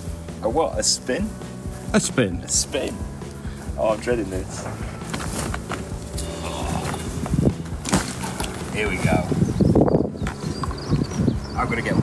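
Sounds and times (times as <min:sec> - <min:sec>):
kayak hull rubbing and creaking: 0:03.8 - 0:11.4.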